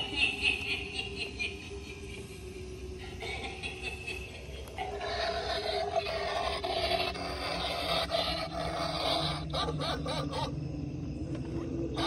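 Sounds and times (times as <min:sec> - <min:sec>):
rasping growl-like noise: 0:04.7 - 0:10.5.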